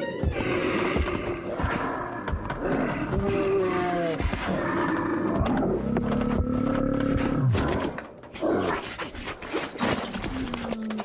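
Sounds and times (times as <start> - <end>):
bear growling: 0.2 - 9.2
clatters and knocks of rummaging: 4.1 - 11.0.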